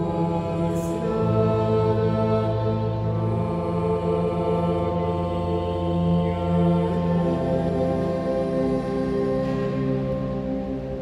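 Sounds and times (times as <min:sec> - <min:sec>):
group singing a hymn: 0:00.0 - 0:10.6
pipe organ: 0:00.0 - 0:11.0.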